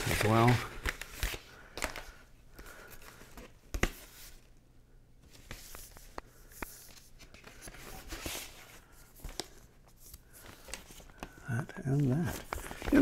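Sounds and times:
card and paper rustling: 0.0s - 4.6s, 5.2s - 13.0s.

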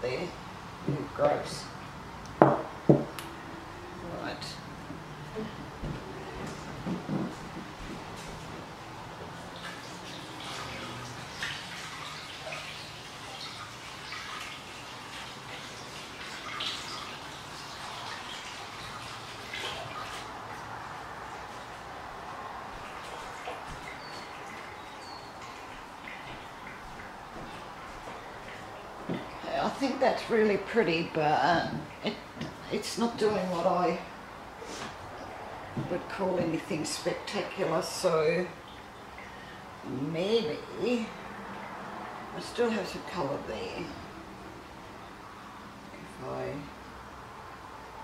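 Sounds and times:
room noise: 0.0s - 11.2s
louder knocks: 2.4s - 3.2s.

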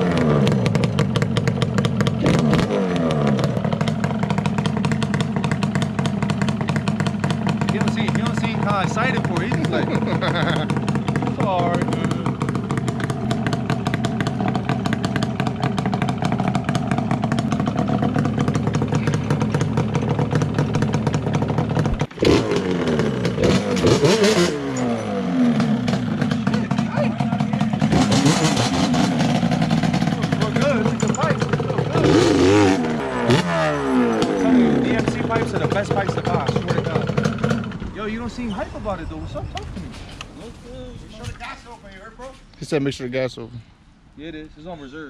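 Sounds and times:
two-stroke engine idling: 0.0s - 39.9s.

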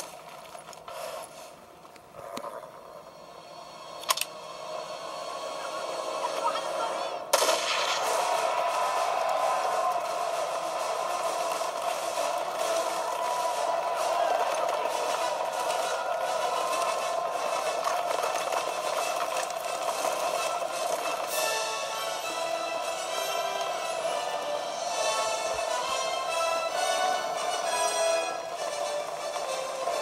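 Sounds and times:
gunfire and explosions: 5.8s - 30.0s.

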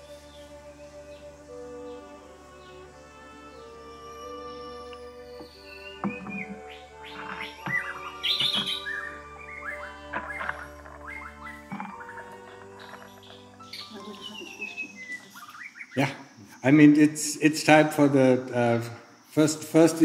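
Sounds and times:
soft background music: 0.0s - 16.0s
small birds chirping: 0.0s - 20.0s.

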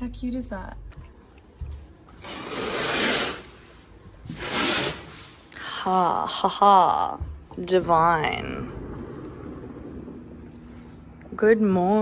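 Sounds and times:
curtains sliding on rail: 2.1s - 5.5s.

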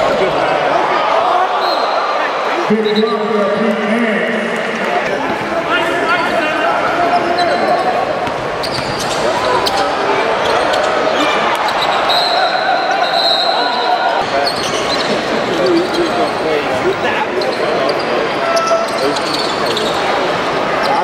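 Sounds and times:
players and spectators voices: 0.0s - 21.0s
high shoe squeak: 8.6s - 11.0s, 11.7s - 16.5s, 17.4s - 20.2s.

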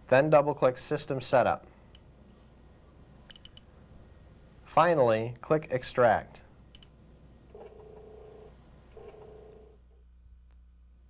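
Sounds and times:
floppy disk drive reading: 6.8s - 9.8s.

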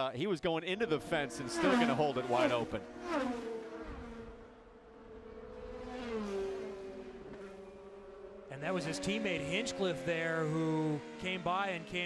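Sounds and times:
race car engines passing: 0.2s - 12.0s.

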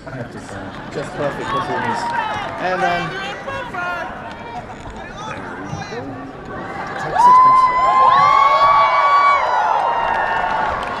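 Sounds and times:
arena crowd cheering and screaming: 1.0s - 11.0s.

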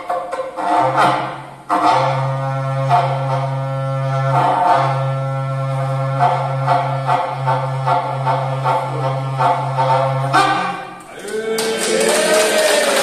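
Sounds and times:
ox-horn trumpet droning note: 0.7s - 11.0s.

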